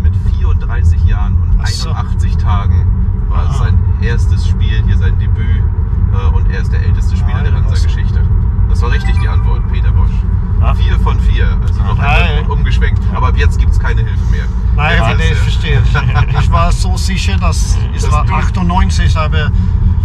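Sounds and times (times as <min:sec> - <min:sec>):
men talking: 0:00.0 - 0:19.7
car road and engine rumble: 0:00.0 - 0:20.0.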